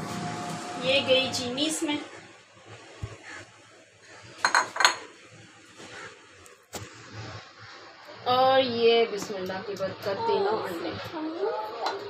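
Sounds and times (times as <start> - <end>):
crockery clinking: 4.4 - 5.0.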